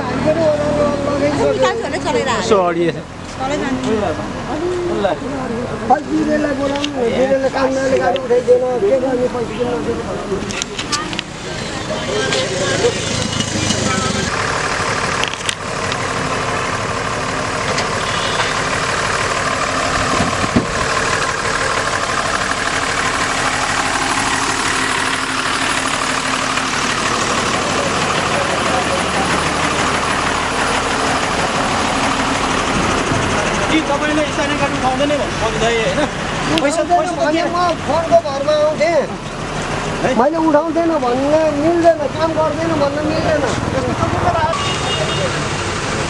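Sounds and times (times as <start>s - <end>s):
people talking: 0.0s - 14.3s, 27.1s - 31.5s, 33.2s - 39.3s, 40.0s - 45.6s
heavy vehicle engines passing: 0.0s - 46.0s.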